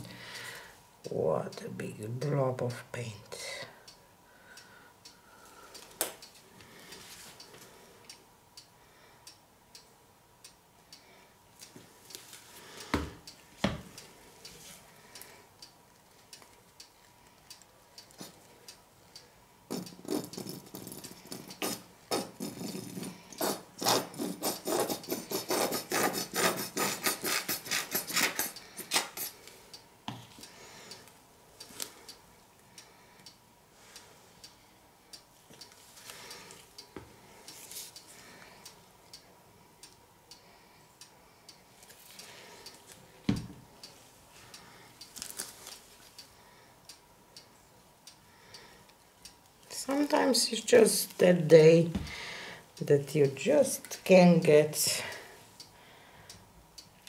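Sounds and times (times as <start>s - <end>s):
squeeze bottle rasping and crackling: 19.7s - 29.4s.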